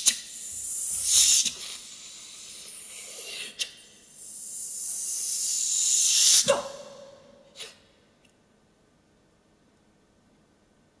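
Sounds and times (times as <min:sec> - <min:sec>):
soprano hissing sss: 0:00.0 - 0:07.8.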